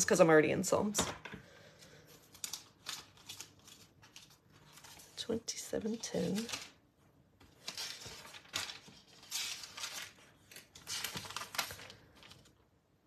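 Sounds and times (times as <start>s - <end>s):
thin paper pages rustling: 2.0s - 6.8s, 7.4s - 12.6s.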